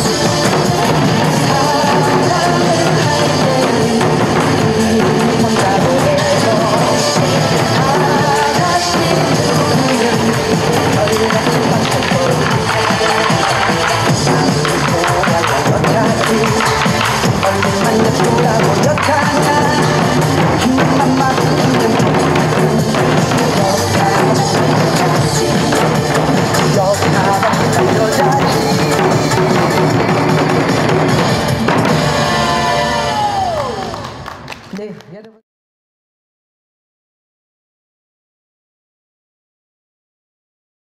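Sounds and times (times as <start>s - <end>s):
loud trot music: 0.0s - 34.5s
barrel drums struck with sticks: 0.4s - 32.2s.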